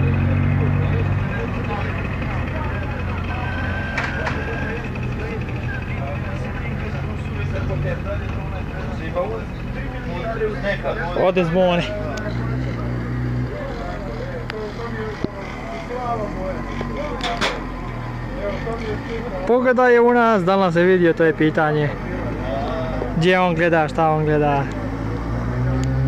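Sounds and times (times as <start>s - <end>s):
motorcycle engine idling: 0.0s - 19.5s
people talking: 0.0s - 25.0s.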